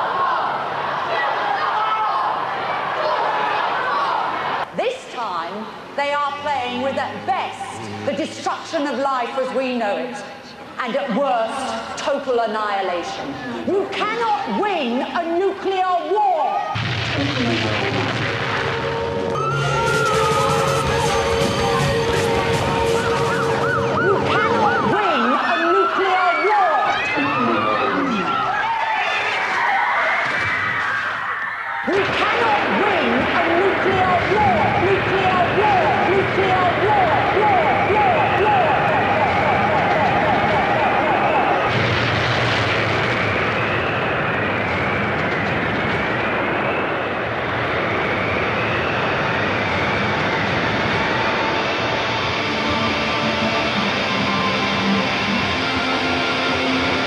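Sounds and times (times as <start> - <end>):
emergency vehicle sirens: 17.4 - 57.0
loud roar like aircraft engines: 17.7 - 26.0, 34.1 - 41.8, 42.5 - 57.0
steady hum: 32.6 - 57.0.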